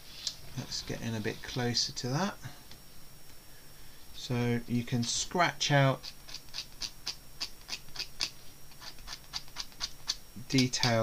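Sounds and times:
blade scraping paper: 0:06.0 - 0:11.0.

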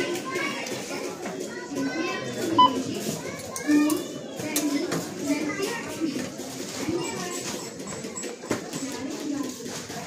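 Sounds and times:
chatter of adults and children: 0:00.0 - 0:10.0
barcode scanner beep: 0:02.6 - 0:02.9.

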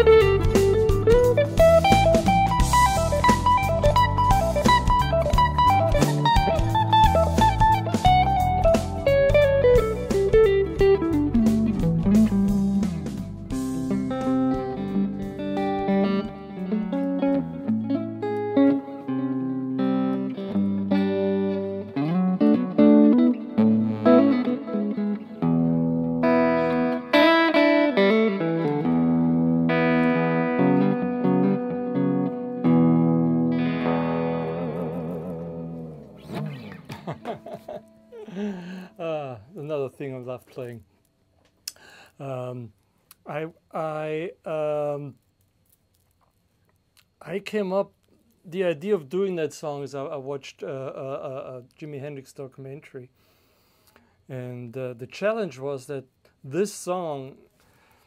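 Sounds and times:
drums: 0:00.0 - 0:15.8
bass notes: 0:00.0 - 0:18.4, 0:28.8 - 0:39.3
electric guitar melody: 0:00.0 - 0:39.2.

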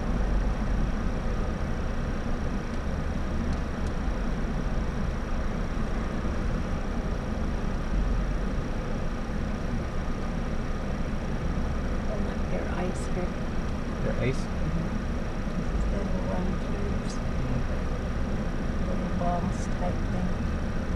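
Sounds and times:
car engine idling: 0:00.0 - 0:20.9
faint high-pitched whine: 0:00.0 - 0:20.9.

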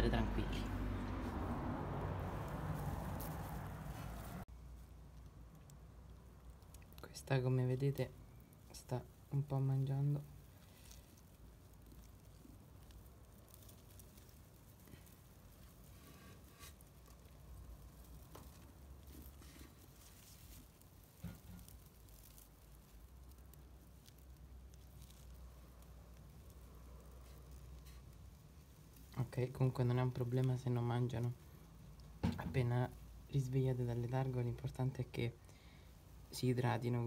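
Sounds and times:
tortoise biting leaf: 0:00.0 - 0:34.8.

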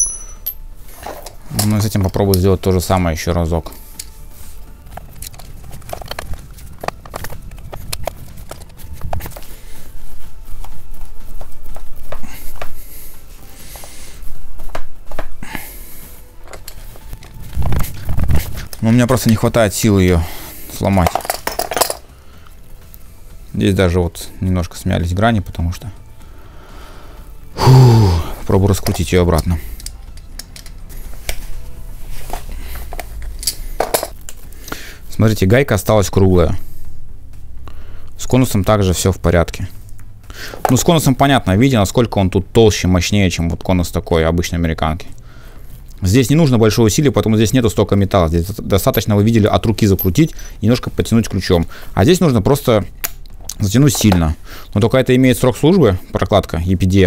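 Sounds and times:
wrenches clinking on metal nut: 0:00.0 - 0:02.5, 0:20.9 - 0:22.0, 0:48.8 - 0:50.5
wrenches clicking and creaking on metal: 0:48.8 - 0:51.6.

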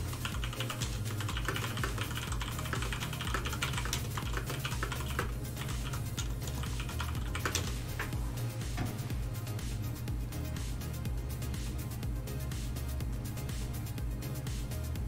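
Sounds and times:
rapid typing on a keyboard: 0:00.0 - 0:08.1
background music with low beat: 0:00.0 - 0:15.0.

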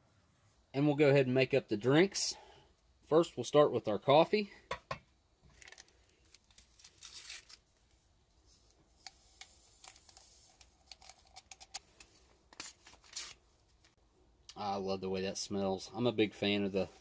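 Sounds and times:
paper packets tearing: 0:05.6 - 0:07.7, 0:12.6 - 0:13.4.

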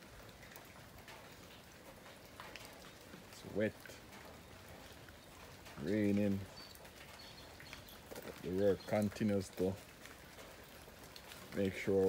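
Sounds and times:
light rain falling: 0:00.0 - 0:12.0.

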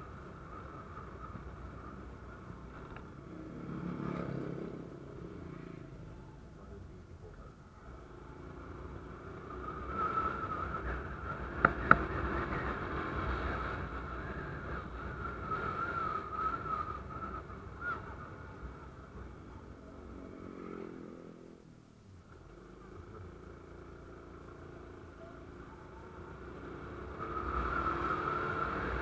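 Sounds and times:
road and wind noise: 0:00.0 - 0:29.0.

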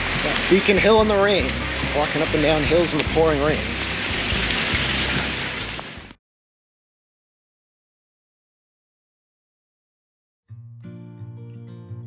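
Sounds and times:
low microphone rumble: 0:00.0 - 0:06.1
heavy rain pouring: 0:00.0 - 0:06.2.

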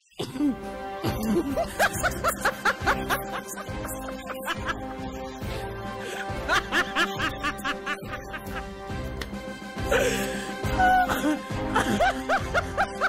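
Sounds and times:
background music: 0:00.0 - 0:13.0
laughter: 0:01.0 - 0:05.3, 0:06.0 - 0:08.6, 0:10.8 - 0:13.0.

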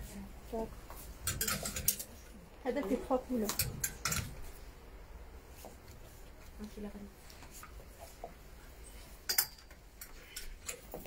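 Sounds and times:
clothes hangers clicking on rail: 0:01.2 - 0:02.2, 0:03.4 - 0:04.4.

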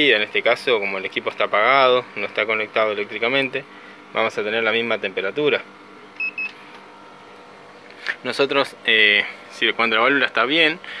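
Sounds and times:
thermometer beeps: 0:06.2 - 0:06.6.

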